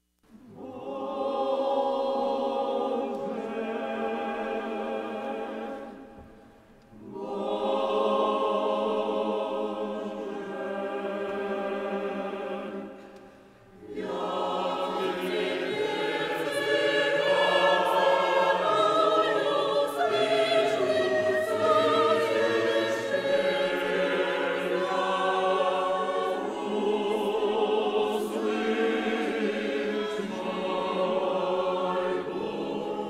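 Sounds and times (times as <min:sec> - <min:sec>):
women's choir singing a hymn: 0:00.4 - 0:33.0.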